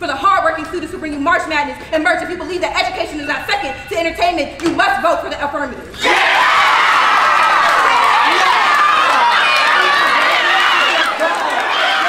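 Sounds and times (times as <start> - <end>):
young people cheering and shouting: 6.0 - 12.0.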